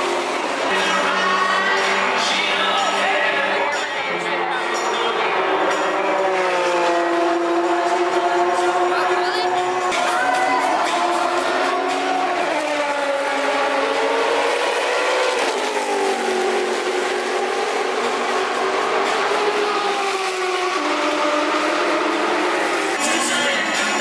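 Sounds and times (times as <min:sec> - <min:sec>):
race car engine running hard: 0:00.0 - 0:24.0.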